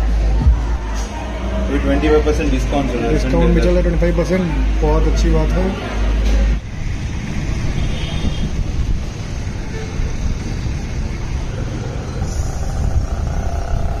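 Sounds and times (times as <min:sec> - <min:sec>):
road traffic rumble: 0:00.0 - 0:14.0.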